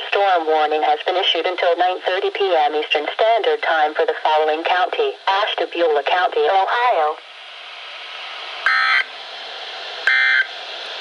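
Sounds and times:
radio hiss: 0.0 - 7.2
digital data tones screech: 8.7 - 9.1, 10.1 - 10.5.

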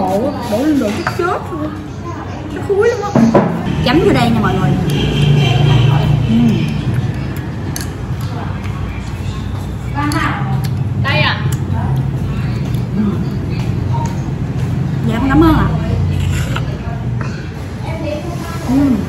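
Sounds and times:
voices: 0.0 - 19.0.

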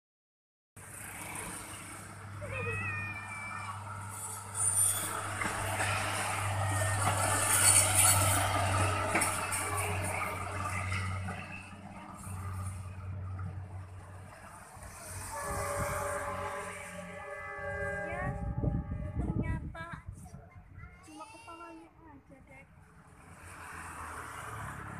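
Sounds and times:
rail vehicle engine hum: 0.8 - 24.9
wheels on rail: 0.8 - 24.9.

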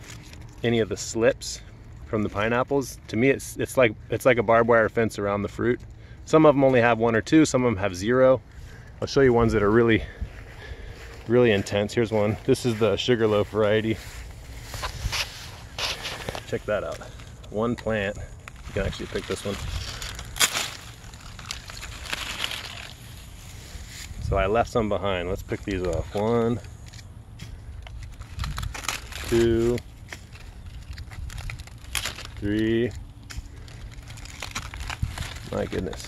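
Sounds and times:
rustling among plants: 0.0 - 3.1, 8.5 - 36.0
low rumble: 8.4 - 36.0
plant slip snapping: 20.0 - 23.0.

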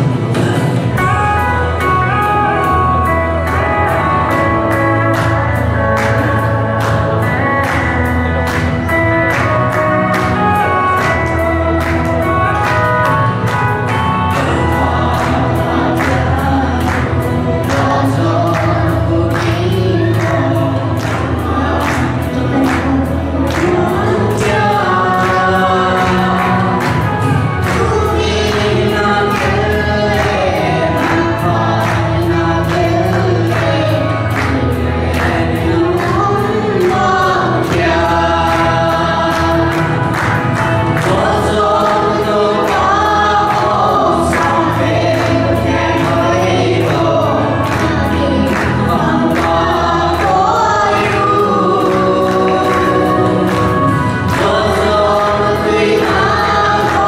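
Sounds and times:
music accompaniment with steady beat: 0.0 - 57.0
people singing together: 0.0 - 57.0.

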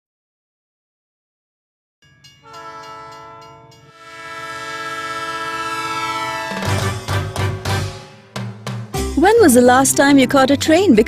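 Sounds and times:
train horn chord blasts: 2.4 - 9.4.

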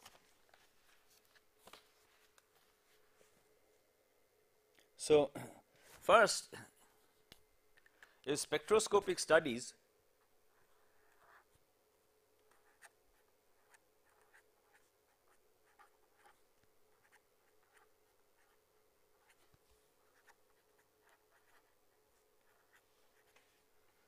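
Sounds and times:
felt-tip pen writing on paper: 12.5 - 19.4, 20.0 - 23.4.

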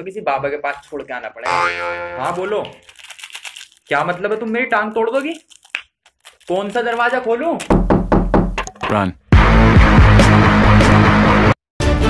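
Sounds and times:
man talking: 2.2 - 2.8, 8.8 - 9.2.

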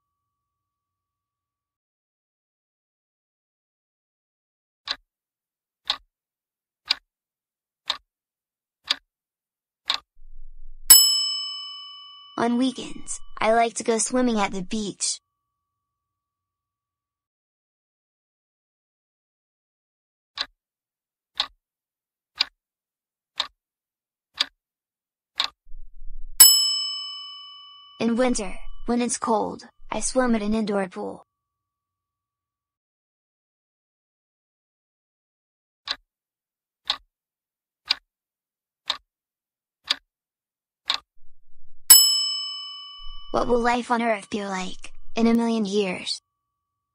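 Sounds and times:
clock ticking: 5.8 - 6.0, 25.4 - 30.7, 42.9 - 45.6
bright bell-like chime: 10.9 - 12.4, 26.4 - 28.0, 41.9 - 43.4.

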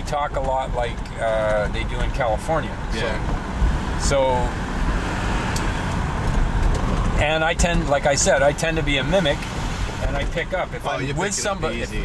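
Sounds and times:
diesel engine and road noise: 0.0 - 12.0.

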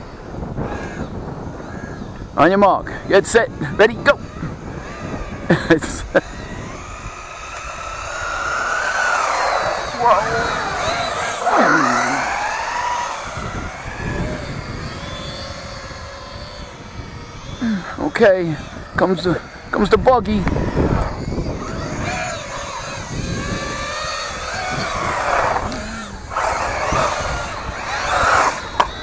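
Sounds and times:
small electric motor whining: 0.0 - 29.0.

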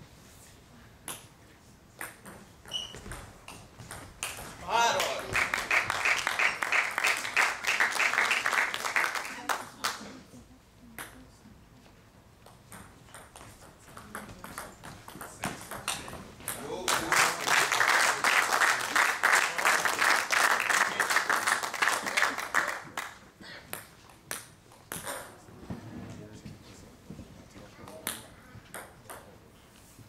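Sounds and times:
spectators clapping: 4.2 - 10.0, 16.8 - 23.2.

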